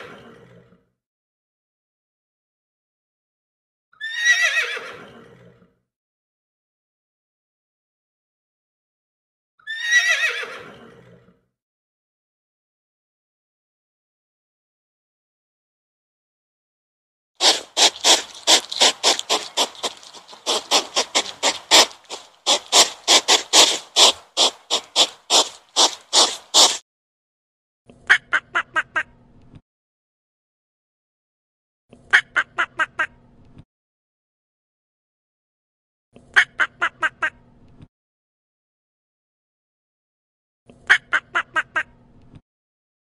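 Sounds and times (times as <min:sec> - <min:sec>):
horse whinnying: 0:04.0 - 0:05.2, 0:09.7 - 0:11.0
hedgehog snuffling: 0:17.4 - 0:26.8.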